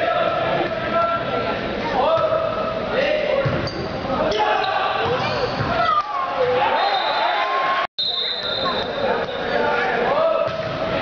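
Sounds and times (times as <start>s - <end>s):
people shouting in a hall: 4.1s - 7.9s, 8.6s - 11.0s.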